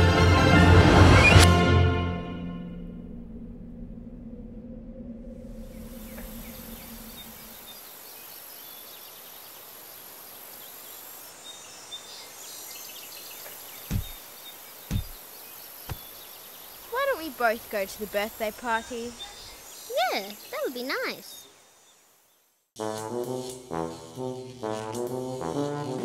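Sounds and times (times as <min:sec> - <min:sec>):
music: 0:00.0 - 0:03.1, 0:22.8 - 0:26.0
insect drone: 0:03.3 - 0:26.0
faint bird chirps: 0:05.5 - 0:22.5
dull thumps: 0:13.9 - 0:14.2, 0:14.9 - 0:15.2, 0:15.9 - 0:16.1.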